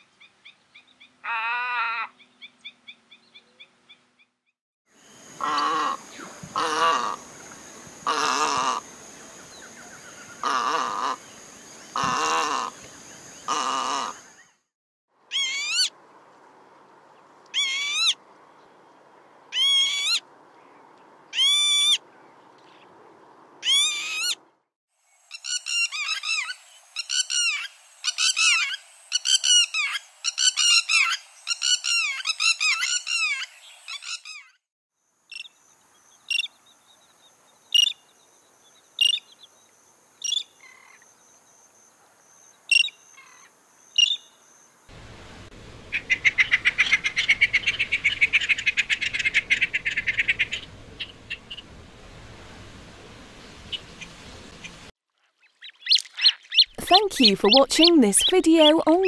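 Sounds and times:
wheezy lapwing call: 1.2 - 2.2, 5.4 - 7.3, 8.0 - 8.9, 10.2 - 11.2, 12.0 - 12.8, 13.5 - 14.2, 15.3 - 15.9, 17.5 - 18.2, 19.5 - 20.2, 21.3 - 22.0, 23.6 - 24.4, 25.3 - 34.6, 45.9 - 51.7
fast repeated lapwing calls: 5.4 - 7.3, 8.0 - 8.9, 10.3 - 11.2, 12.0 - 12.8, 13.5 - 14.2, 45.9 - 51.7, 55.7 - 58.1.

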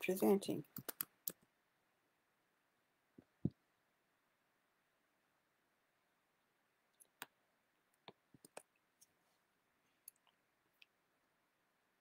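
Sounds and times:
computer mouse clicks: 0.7 - 1.5, 8.0 - 9.1.

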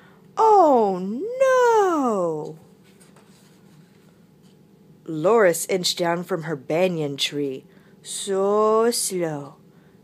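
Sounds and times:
book page turning: 2.4 - 4.6.

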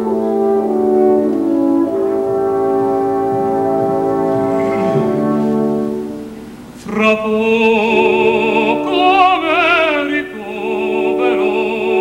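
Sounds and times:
orchestra brass chords: 0.0 - 7.0, 7.8 - 12.0.

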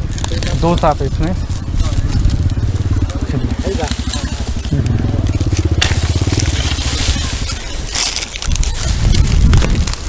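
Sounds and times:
dry straw crunching: 0.0 - 10.0
engine chugging: 0.0 - 10.0.

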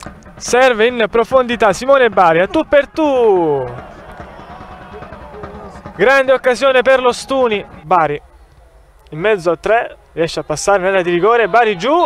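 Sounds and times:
football ground background noise: 0.0 - 12.0.

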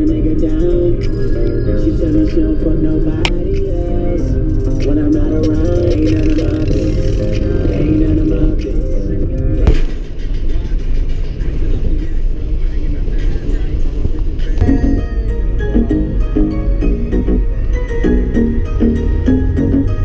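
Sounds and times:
background music: 0.0 - 20.0
car cabin road rumble: 0.0 - 20.0.

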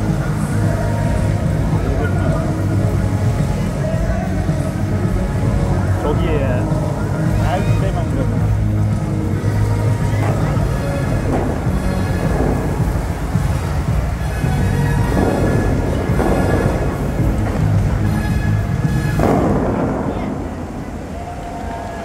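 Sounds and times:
loud amplified show music: 0.0 - 22.0
water jets rushing and booming: 0.0 - 22.0.

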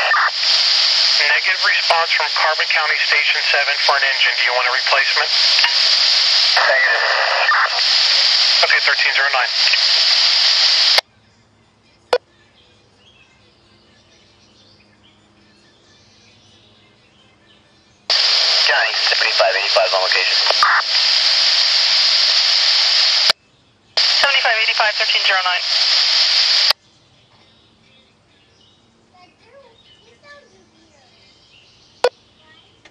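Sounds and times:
radio squelch click: 0.0 - 11.0, 18.1 - 23.4, 24.0 - 26.8
radio static hiss: 0.0 - 11.0, 18.1 - 23.4, 24.0 - 26.8.

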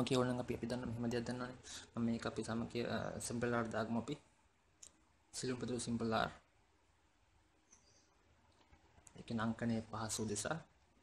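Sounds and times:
man speaking: 0.0 - 4.3, 5.3 - 6.5, 9.1 - 10.8.

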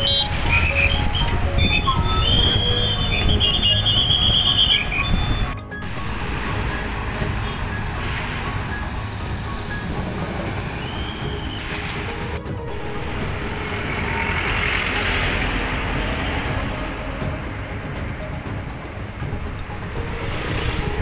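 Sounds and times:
traffic rumble: 0.0 - 21.0.

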